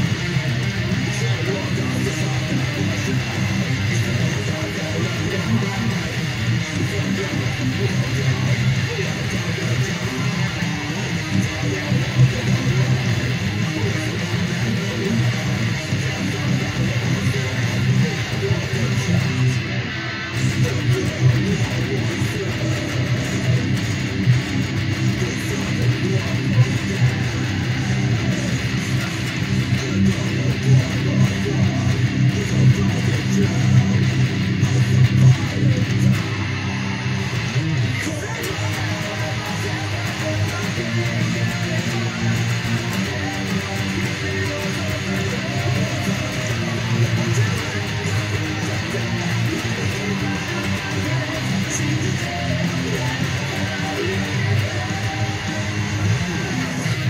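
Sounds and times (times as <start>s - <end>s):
electric guitar riffs: 0.0s - 57.0s.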